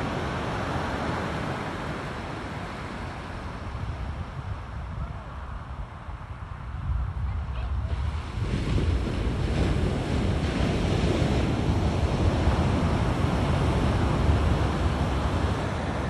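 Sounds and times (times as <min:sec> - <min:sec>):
ocean surf breaking on beach: 0:00.0 - 0:05.7, 0:07.5 - 0:16.0
wind buffeting microphone: 0:00.0 - 0:16.0.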